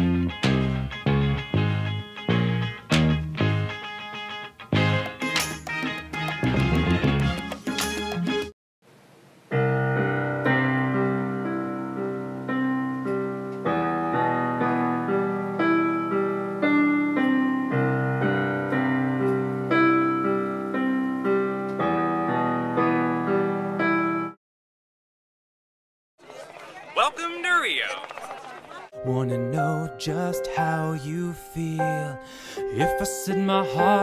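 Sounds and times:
keyboard piano broken chords: 0.0 - 8.5, 9.5 - 24.4, 29.0 - 34.0.

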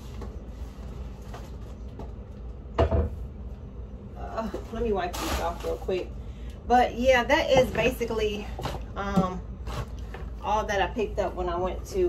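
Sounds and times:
low steady hum: 0.0 - 12.0
knocks on a kitchen counter: 2.8 - 3.2.

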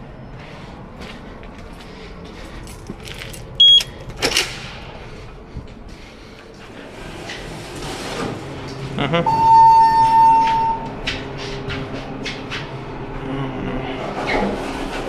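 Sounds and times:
high electronic beep: 9.3 - 10.9.

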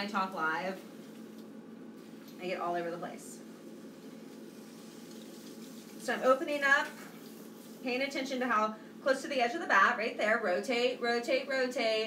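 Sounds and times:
faint motor hum: 0.0 - 12.0
wet clay swishing on wheel: 3.6 - 8.4.

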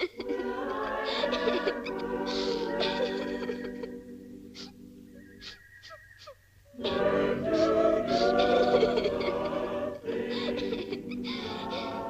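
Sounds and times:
voices singing with orchestra: 0.0 - 12.0
orchestral film music: 6.8 - 12.0.

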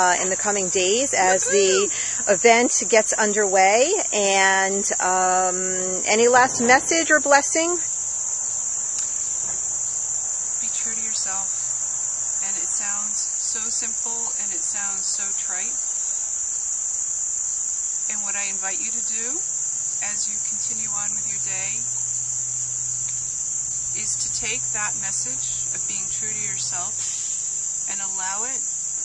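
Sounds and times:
faint low hum: 0.0 - 8.0, 10.4 - 11.8, 18.1 - 28.6
crickets chirring: 0.0 - 29.0.

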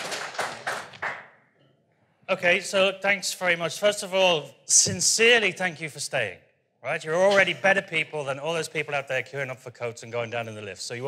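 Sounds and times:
audience applause: 0.0 - 1.3.

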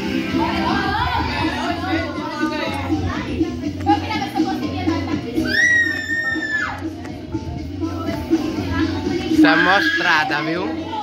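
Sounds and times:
background music with steady beat: 0.0 - 11.0
child squealing: 5.4 - 6.7, 9.5 - 10.3.

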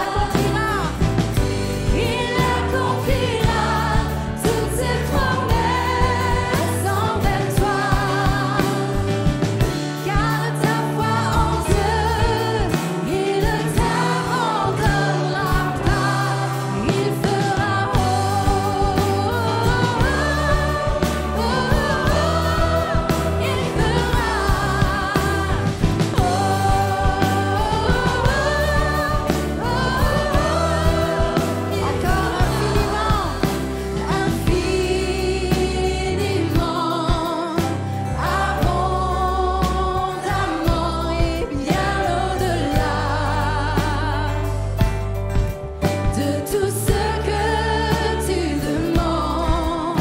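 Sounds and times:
women singing together: 0.0 - 44.9, 46.1 - 50.0
worship band playing: 0.0 - 50.0.

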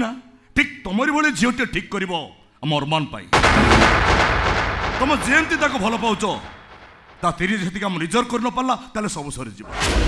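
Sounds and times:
loud bang: 3.4 - 8.2
man speaking: 5.0 - 6.5.

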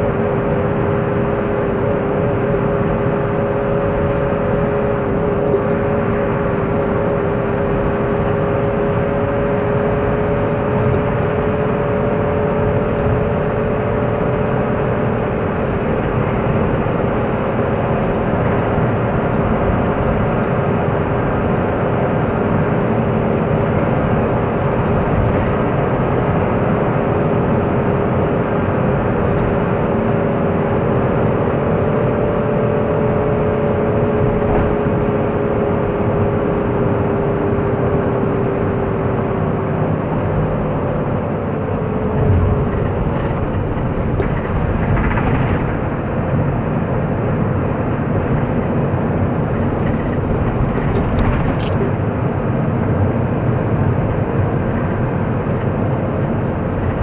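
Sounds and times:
car engine and road noise: 0.0 - 57.0.

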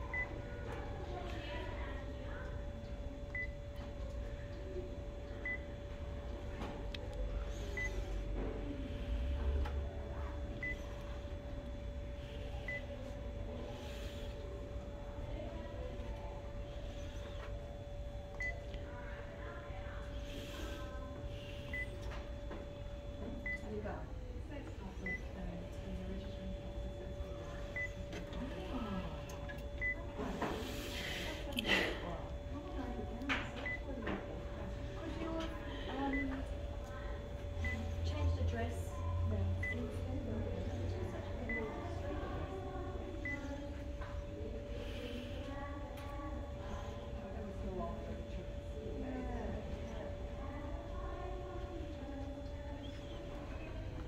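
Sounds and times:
steady machine hum: 0.0 - 54.0
copier touchscreen beeps: 0.1 - 0.4, 3.3 - 3.6, 5.4 - 5.8, 7.5 - 8.1, 10.6 - 11.0, 12.6 - 13.0, 18.3 - 18.7, 21.7 - 22.1, 23.3 - 23.7, 25.0 - 25.4, 26.8 - 30.2, 33.6 - 33.9, 36.1 - 36.4, 37.6 - 38.0, 39.6 - 40.0, 41.4 - 41.8.

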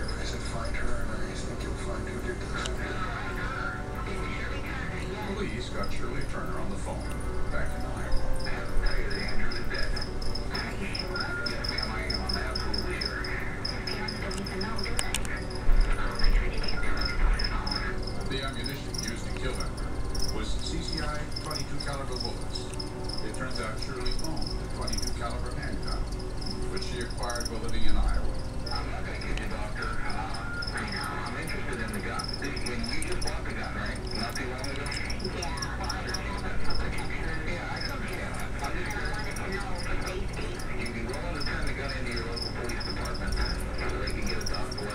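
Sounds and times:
cricket chirping: 0.0 - 44.9
steady low hum: 0.0 - 44.9.

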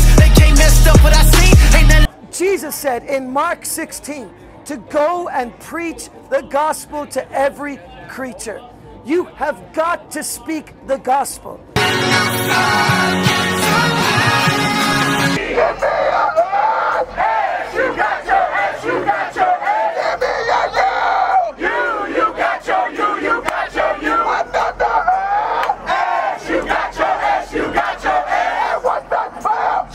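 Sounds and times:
music: 0.0 - 2.3, 3.4 - 29.9
crowd shouting and cheering: 11.8 - 29.9.

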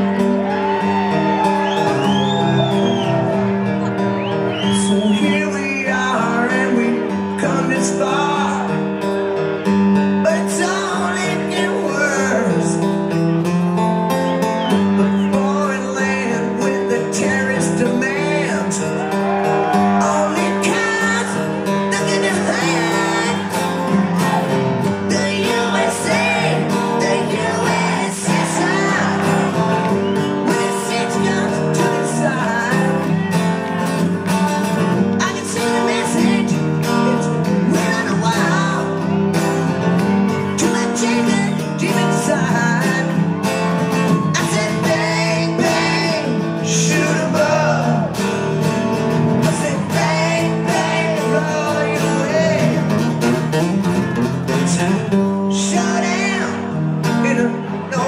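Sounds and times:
acoustic guitars strummed: 0.0 - 58.0
man singing lead vocal: 4.5 - 9.0, 10.2 - 13.0, 14.6 - 39.8, 40.4 - 48.5, 49.2 - 53.2, 54.5 - 58.0.

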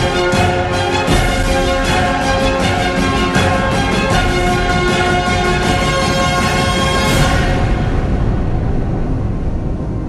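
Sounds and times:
deep loud rumble: 0.0 - 10.0
theme music tones: 0.0 - 10.0.

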